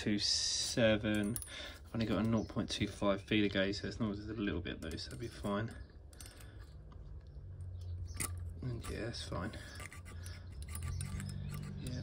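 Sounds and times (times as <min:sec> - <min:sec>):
feeler gauge scraping and clicking: 0:04.8 - 0:12.0.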